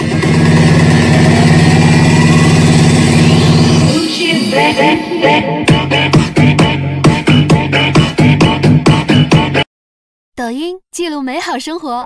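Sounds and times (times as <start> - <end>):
engine running loudly: 0.0 - 4.1.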